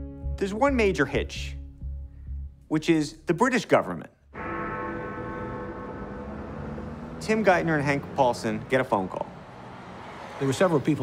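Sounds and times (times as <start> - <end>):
bell-like tone ringing: 4.4 - 6.4.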